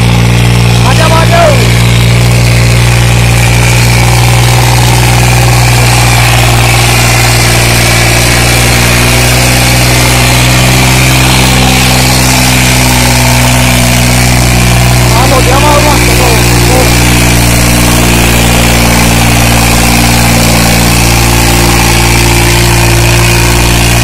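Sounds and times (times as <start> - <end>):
tractor diesel engine running: 0.0 - 24.0.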